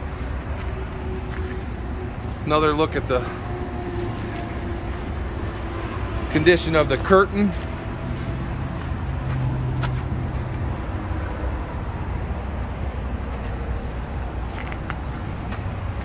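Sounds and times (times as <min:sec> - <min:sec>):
vehicle engine rumble: 0:00.0 - 0:16.0.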